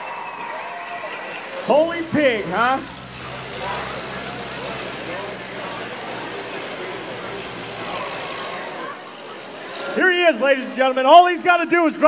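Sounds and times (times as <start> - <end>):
faint crowd voices: 0.0 - 12.0
race car engine running: 1.3 - 9.1.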